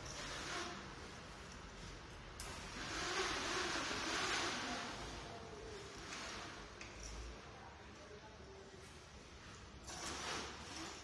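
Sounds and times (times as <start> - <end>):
window blind sliding: 0.0 - 6.8, 9.8 - 11.0.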